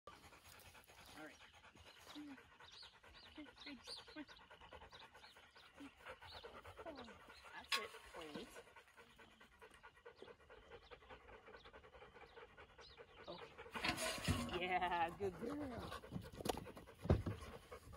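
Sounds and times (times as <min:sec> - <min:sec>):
dog panting: 0:00.1 - 0:17.9.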